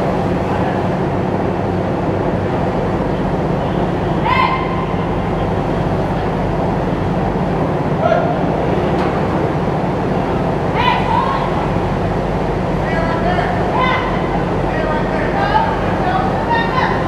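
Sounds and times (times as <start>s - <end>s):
diesel engine running: 0.0s - 17.0s.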